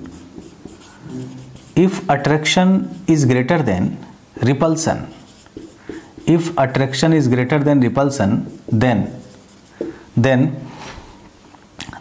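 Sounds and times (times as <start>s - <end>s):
marker scratching on whiteboard: 0.0s - 3.2s, 4.8s - 10.2s.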